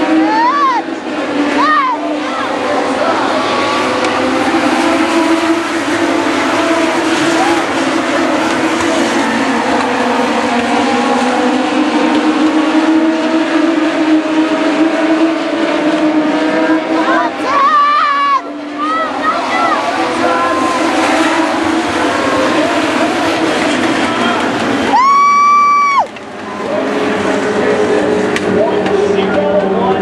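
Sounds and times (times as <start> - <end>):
race car engines at high revs: 0.0 - 30.0.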